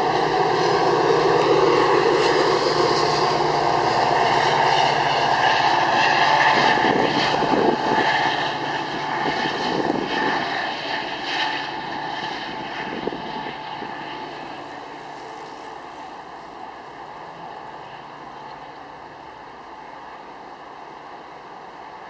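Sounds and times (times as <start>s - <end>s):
diesel train engine drone: 0.0s - 22.0s.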